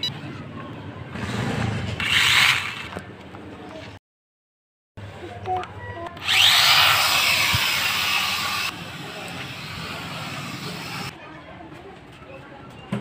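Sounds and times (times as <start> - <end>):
toy drone motors whining: 2.0 - 2.9, 6.2 - 11.1.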